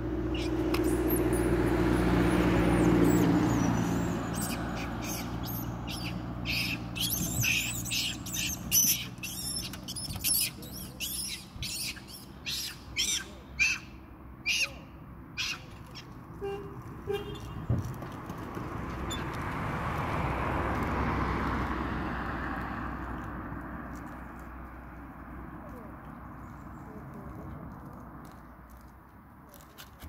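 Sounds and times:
vehicle engine rumble: 0:00.0 - 0:30.0
high-pitched chirping calls: 0:00.3 - 0:01.6, 0:02.6 - 0:16.1.

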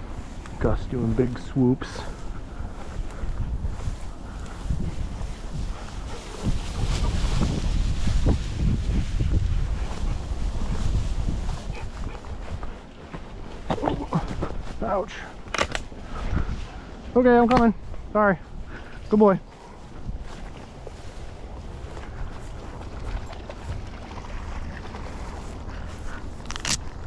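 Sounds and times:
footsteps through dry grass: 0:00.0 - 0:27.0
wind rumbling on microphone: 0:00.0 - 0:27.0.

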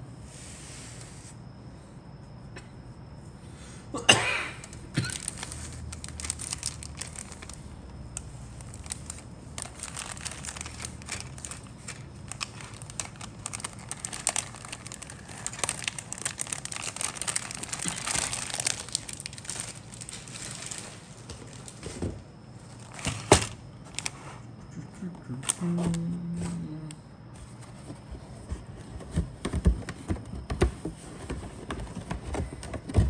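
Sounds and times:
plastic bag crinkling: 0:04.6 - 0:07.6, 0:08.2 - 0:22.0, 0:22.7 - 0:24.2.

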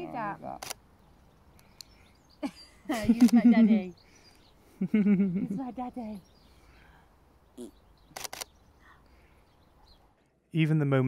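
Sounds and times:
person laughing: 0:04.8 - 0:05.6
short vocal sound: 0:07.6 - 0:07.8.

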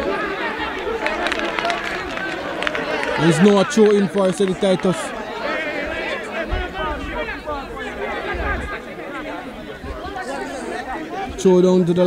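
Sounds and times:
chatter of several voices: 0:00.0 - 0:12.0.

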